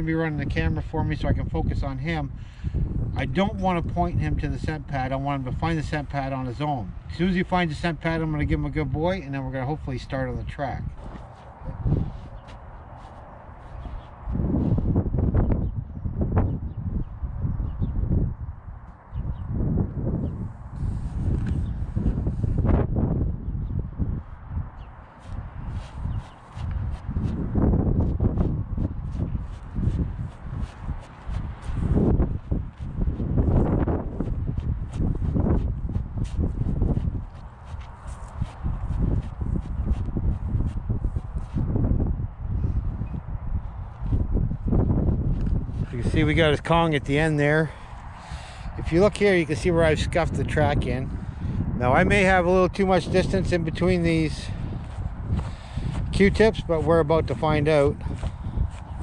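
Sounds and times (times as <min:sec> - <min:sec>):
gusty wind buffeting microphone: 0:00.0 - 0:59.0
footsteps crunching dry grass: 0:10.9 - 0:14.8, 0:25.0 - 0:41.8.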